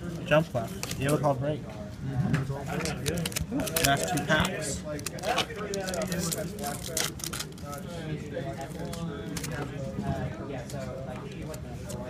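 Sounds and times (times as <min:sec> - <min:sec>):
trading cards handled: 0:02.7 - 0:07.8
foil pack crinkling and tearing: 0:02.7 - 0:07.9.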